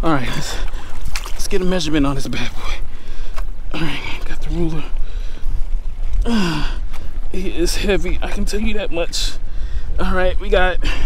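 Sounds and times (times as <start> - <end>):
wind rumble on microphone: 0.0 - 11.0
man sighing: 6.2 - 6.9.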